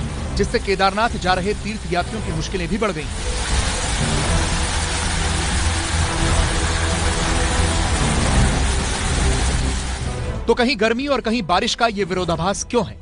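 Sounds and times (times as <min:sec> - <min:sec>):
low rumble: 0:00.0 - 0:10.5
rain and hail storm rushing: 0:00.0 - 0:10.5
faint background music: 0:00.0 - 0:13.0.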